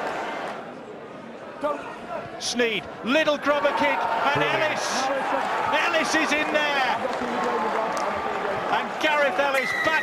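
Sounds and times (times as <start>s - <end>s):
stadium crowd noise: 0.0s - 10.0s
man commentating: 2.5s - 10.0s.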